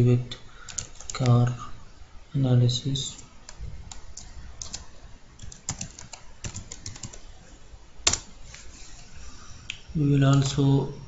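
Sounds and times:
computer keyboard typing: 0.7 - 1.4, 3.1 - 7.3, 8.0 - 8.3.

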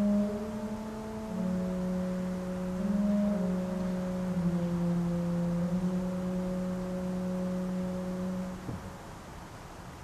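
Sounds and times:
pipe organ chord: 0.0 - 8.8.

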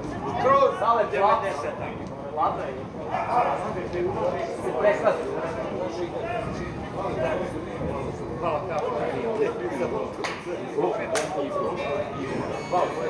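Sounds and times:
men talking indistinctly: 0.2 - 13.0.

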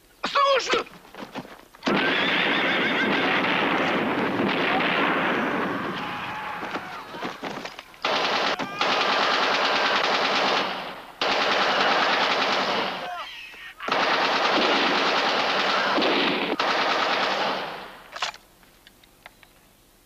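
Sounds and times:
machine-gun fire: 1.8 - 6.1, 8.0 - 13.1, 13.9 - 18.0.

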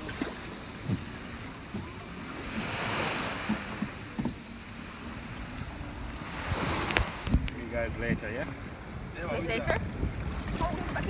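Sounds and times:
water washing against boat hull: 0.0 - 11.0.

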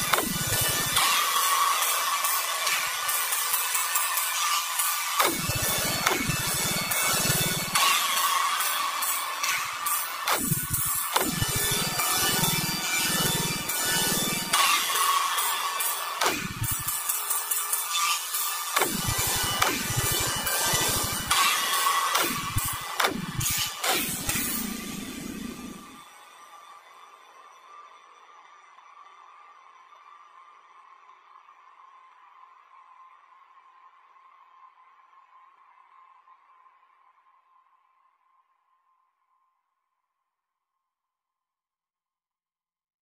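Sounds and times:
electronic music with bass sweeps: 0.0 - 26.8.

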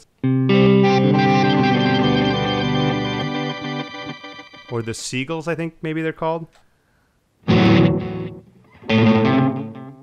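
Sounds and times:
electric guitar chord with reverb: 0.3 - 4.8, 7.5 - 9.9.

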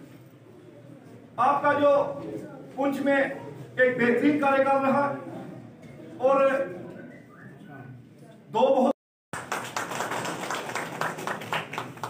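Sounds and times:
group applauding: 9.3 - 12.0.

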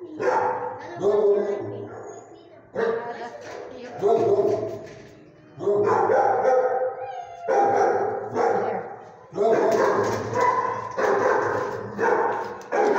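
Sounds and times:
dog barking in kennel: 0.1 - 2.2, 4.0 - 4.8, 5.6 - 12.9.

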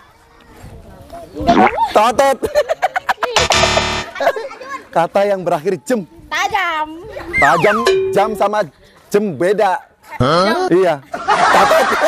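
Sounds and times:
person vocal sound rising in pitch: 1.5 - 1.9.

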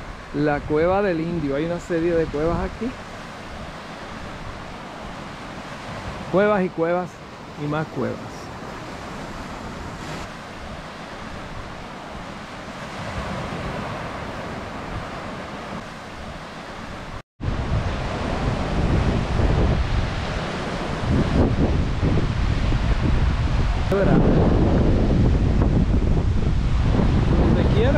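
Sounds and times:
ocean surf breaking over rocks: 0.0 - 27.9
wind buffeting microphone: 8.5 - 27.9.

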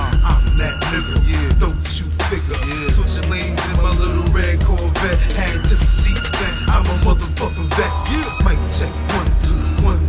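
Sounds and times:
hip hop beat with heavy bass: 0.0 - 10.0
person rapping: 0.0 - 10.0.

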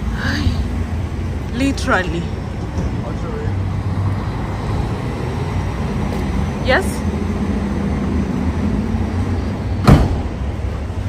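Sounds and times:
sharp knock: 9.8 - 10.3.

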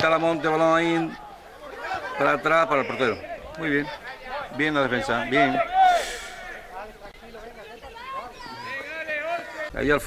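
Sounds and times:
faint voices chattering: 0.0 - 10.0.

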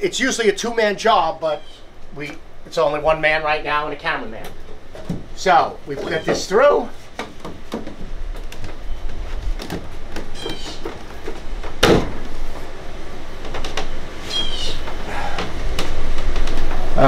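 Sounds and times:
plastic squeaks: 5.9 - 6.5, 8.5 - 11.3.

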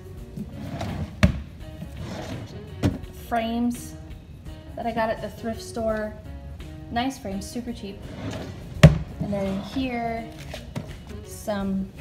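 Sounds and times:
soft background music: 0.0 - 12.0
drawer knocking shut: 0.7 - 3.1, 8.3 - 9.2.

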